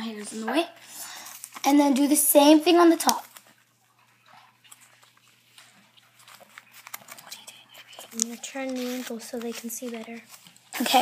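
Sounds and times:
paper rustling and crackling: 0:03.0 - 0:11.0.

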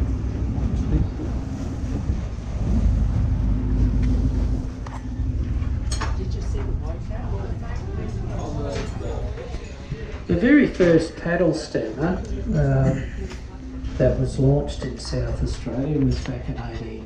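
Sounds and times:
boat engine drone: 0:00.0 - 0:17.0.

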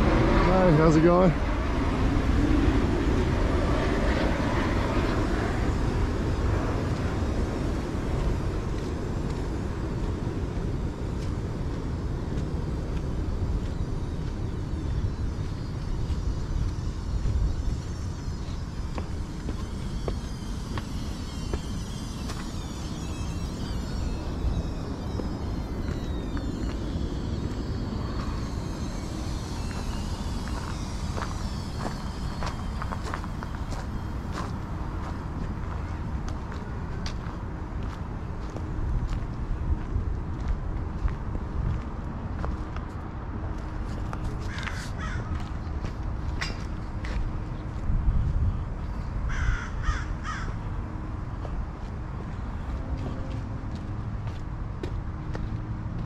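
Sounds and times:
low outdoor rumble: 0:00.0 - 0:56.0
higher chirps: 0:04.9 - 0:36.0
crow cawing: 0:44.5 - 0:45.4, 0:49.3 - 0:50.6.

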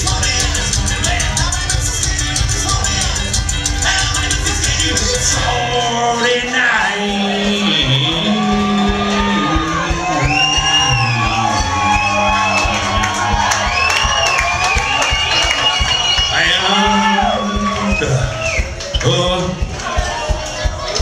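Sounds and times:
bass low notes: 0:00.0 - 0:06.1, 0:07.0 - 0:21.0
people whooping and shouting: 0:03.6 - 0:21.0.

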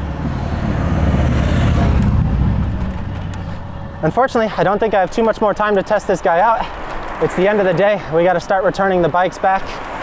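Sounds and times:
wind rushing over microphone: 0:00.0 - 0:08.7
tyres rolling on asphalt: 0:00.0 - 0:10.0.

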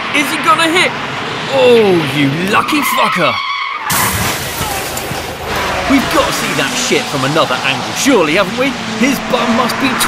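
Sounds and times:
rushing trackside noise: 0:00.0 - 0:10.0
distant car driving away: 0:03.8 - 0:10.0.

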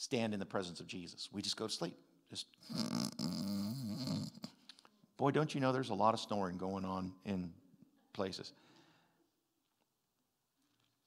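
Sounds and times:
man imitating a snore: 0:02.6 - 0:04.5.

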